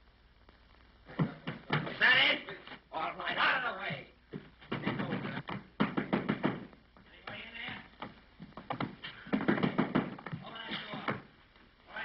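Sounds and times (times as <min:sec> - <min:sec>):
knocks and thumps: 0:01.1 - 0:02.0, 0:04.3 - 0:11.4.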